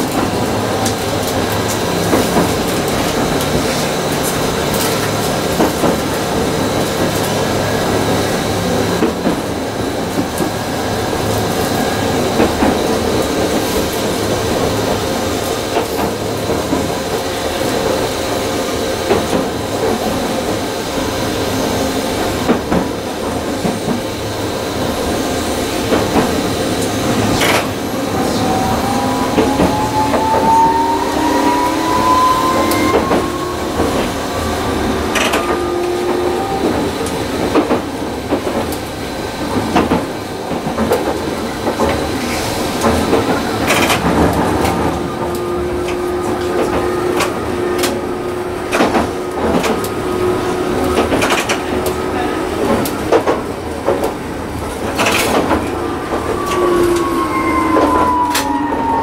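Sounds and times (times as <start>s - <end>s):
tram wheels rumbling on rails: 0.0s - 59.0s
traction motor whine rising: 26.9s - 37.5s
sharp rail clicks: 32.2s - 38.9s, 50.8s - 52.0s.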